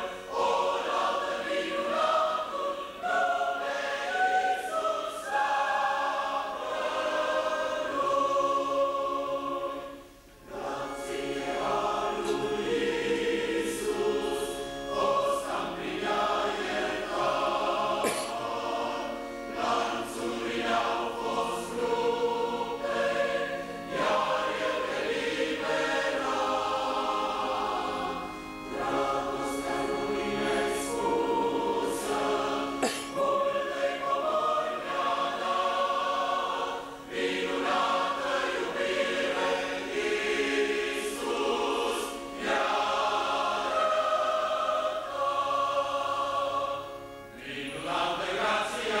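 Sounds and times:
choir singing a hymn: 0:00.0 - 0:49.0.

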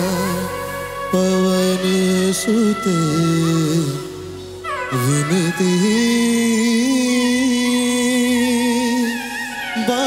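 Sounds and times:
live band accompaniment: 0:00.0 - 0:10.0
man singing long note: 0:00.0 - 0:10.0.

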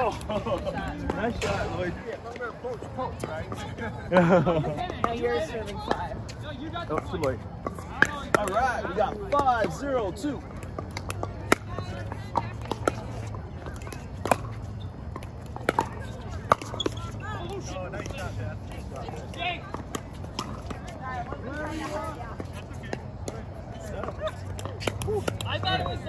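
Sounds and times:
voices from nearby courts: 0:00.0 - 0:26.0.

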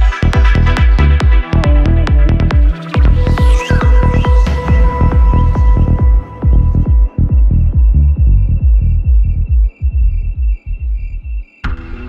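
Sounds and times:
kick and bass pattern: 0:00.0 - 0:11.5
melodic synth notes: 0:01.1 - 0:09.8.

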